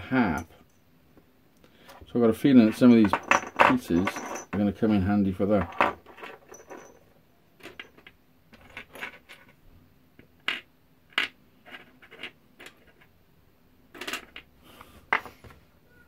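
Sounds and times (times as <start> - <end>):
metal scrap parts clinking: 2.6 - 4.9, 5.6 - 9.5.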